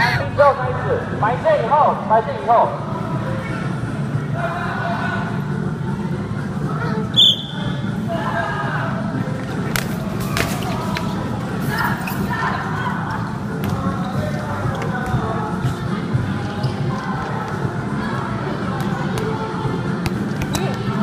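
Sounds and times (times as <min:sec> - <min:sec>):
short high whistle blast: 0:07.2 - 0:07.7.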